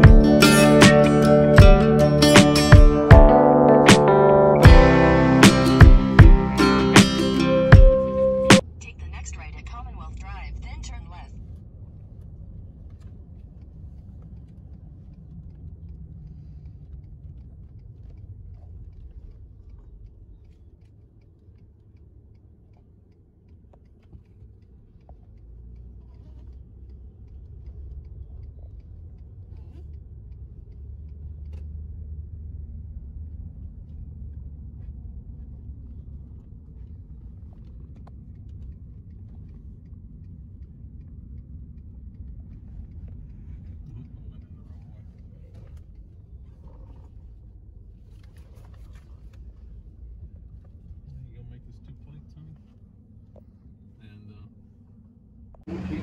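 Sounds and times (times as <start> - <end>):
road and engine rumble: 0.0 - 56.0.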